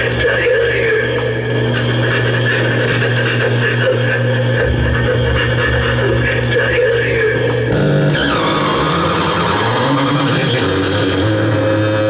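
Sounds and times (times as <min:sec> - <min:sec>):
constant low hum: 0:00.0 - 0:09.8
noise music drone: 0:00.0 - 0:12.0
deep low rumble: 0:04.3 - 0:09.2.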